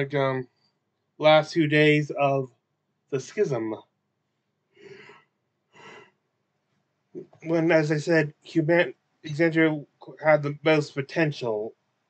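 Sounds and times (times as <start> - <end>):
person breathing in close: 4.8 - 5.2, 5.8 - 6.1.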